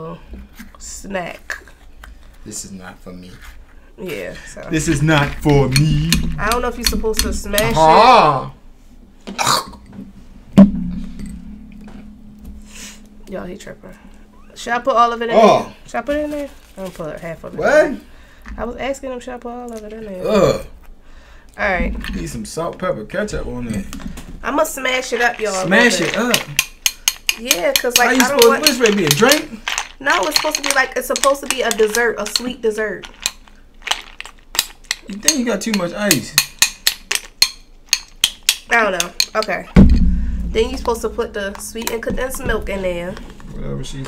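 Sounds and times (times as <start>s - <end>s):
spoon knocking ice cubes: 5.4s - 7.9s, 25.7s - 39.5s
metal spoon clinking glass bowl: 25.8s - 32.5s.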